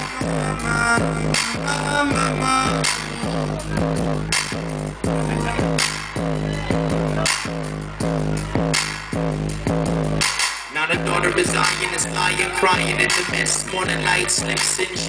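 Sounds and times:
low bass drone: 0.0 - 10.4, 11.0 - 15.0
beatboxing into a microphone: 0.0 - 15.0.

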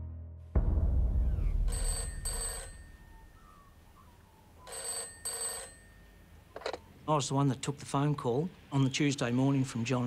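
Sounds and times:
low boom: 0.0 - 4.1
telephone bell ringing: 1.7 - 3.6, 4.6 - 6.8.

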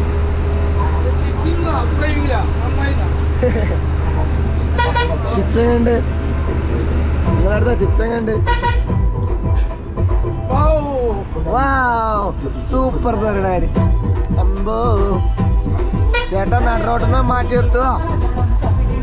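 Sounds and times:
voices: 0.0 - 8.8, 10.4 - 19.0
bus engine humming: 0.0 - 19.0
bus horn: 4.7 - 5.6, 8.4 - 9.0, 16.0 - 17.2.

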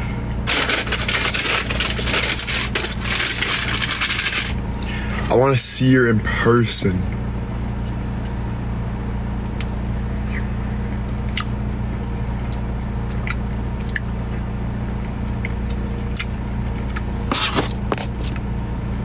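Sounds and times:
low car cabin hum: 0.0 - 19.0
person chewing: 11.2 - 18.4.

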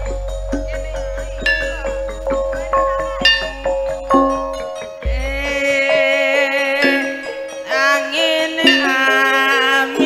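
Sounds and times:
held ringing tone: 0.0 - 10.0
struck metallophone keys: 0.0 - 10.0.

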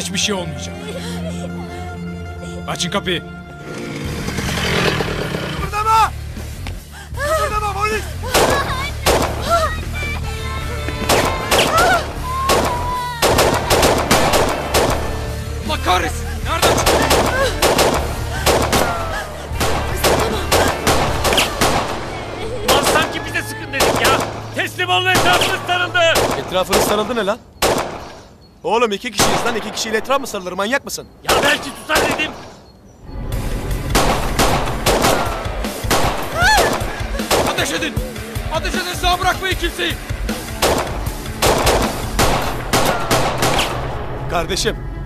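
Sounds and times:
steady low drone: 0.0 - 26.6, 40.0 - 45.0
dramatic background music: 0.0 - 28.3, 31.3 - 45.0
gunshots: 8.3 - 9.5, 11.0 - 15.3, 16.6 - 22.0, 22.7 - 28.3, 29.2 - 30.0, 31.3 - 32.6, 33.9 - 37.9, 40.5 - 44.0.

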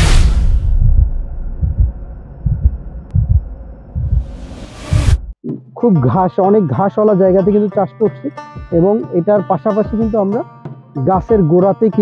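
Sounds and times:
deep bass pulses: 0.0 - 5.4.

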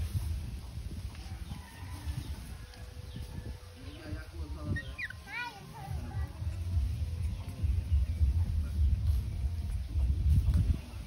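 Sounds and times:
baby monkey squeaky call: 4.6 - 5.4.

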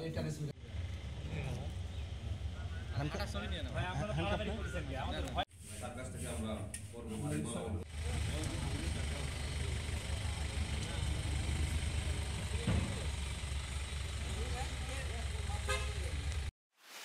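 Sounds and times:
voices talking: 0.0 - 5.5, 7.1 - 16.5
truck engine rumbling: 0.2 - 5.1, 7.9 - 16.5
vehicle horn toot: 15.5 - 16.3.

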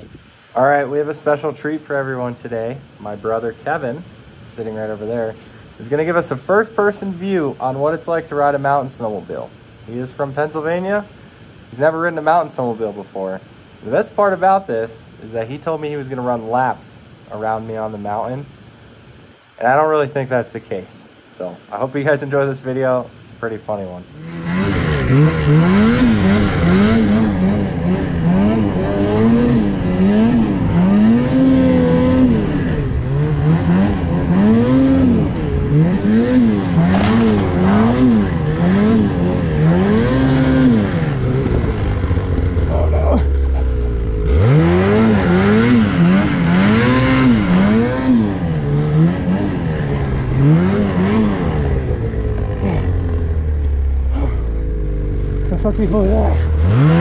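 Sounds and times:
snowmobile engine revving: 24.1 - 57.0.

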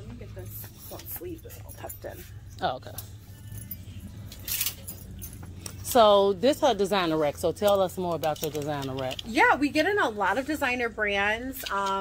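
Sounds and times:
clothes hangers clinking on metal rack: 0.0 - 10.3, 11.1 - 12.0
low steady hum: 0.0 - 12.0.

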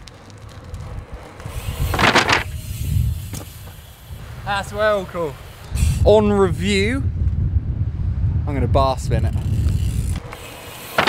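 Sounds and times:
bike rolling over tarmac: 0.0 - 7.6, 8.9 - 11.0.

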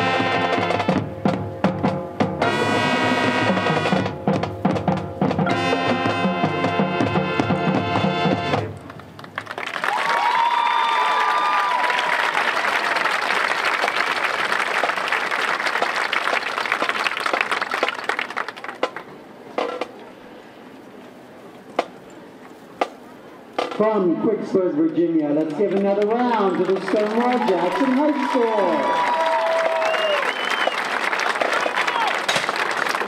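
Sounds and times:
marching band chord: 0.0 - 8.8
crowd applause and cheering: 8.6 - 19.1, 26.0 - 33.0.

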